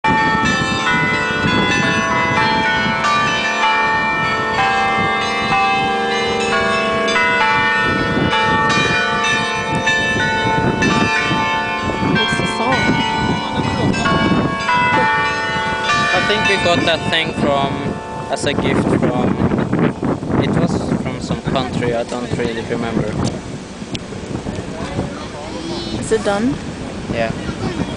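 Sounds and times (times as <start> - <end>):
tuned bells chiming: 0.1 - 20.1.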